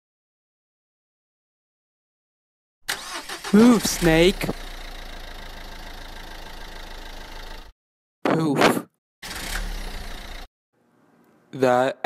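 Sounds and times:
car engine running: 2.9s - 7.7s, 9.3s - 10.5s.

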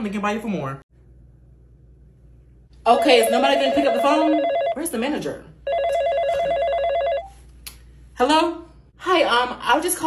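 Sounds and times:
telephone ringing with warbling trill: 2.9s - 4.8s, 5.7s - 7.4s.

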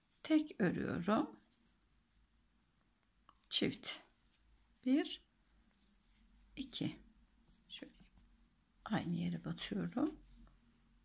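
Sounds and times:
woman speaking: 0.2s - 1.4s, 3.5s - 4.1s, 4.8s - 5.2s, 6.6s - 7.0s, 8.9s - 10.2s.

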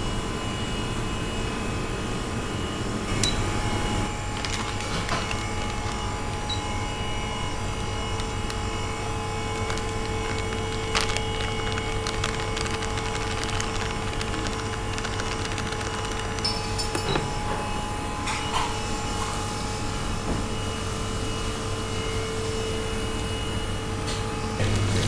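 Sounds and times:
kitchen appliances humming: 2.6s - 25.0s
plastic packets rustling: 4.1s - 17.4s.

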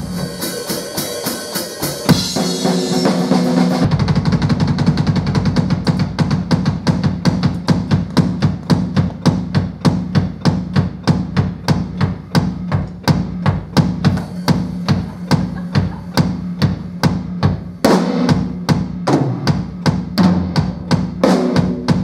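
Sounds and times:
drum kit playing: 0.0s - 22.0s
fast bass drum roll: 0.0s - 22.0s.

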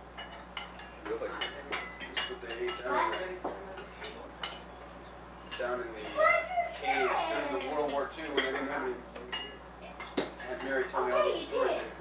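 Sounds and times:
cutlery clinking on plates: 0.2s - 4.7s, 5.4s - 6.2s, 7.5s - 11.4s.

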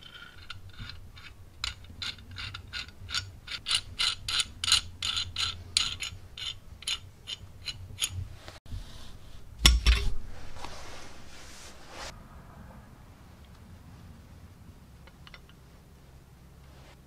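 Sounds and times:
wrench nut spinning clicks: 0.1s - 8.2s.

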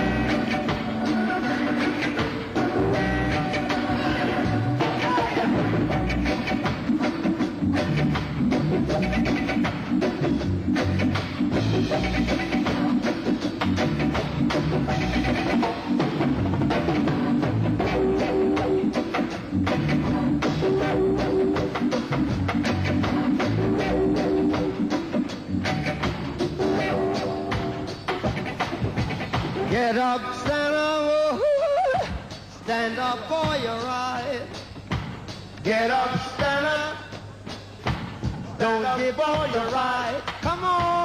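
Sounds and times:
reggae band playing: 0.0s - 41.0s.

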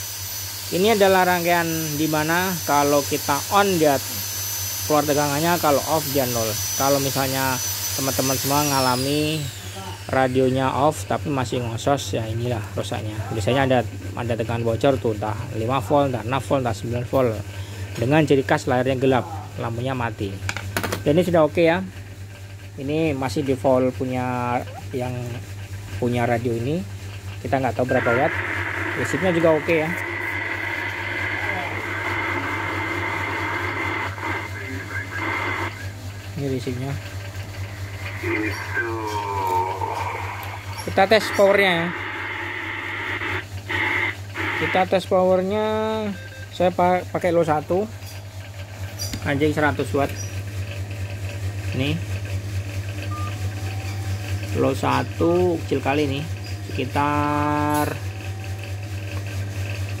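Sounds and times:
constant low hum: 0.0s - 60.0s
muffled voice over radio: 27.6s - 37.0s, 37.8s - 47.6s
radio static hiss: 27.8s - 46.0s.

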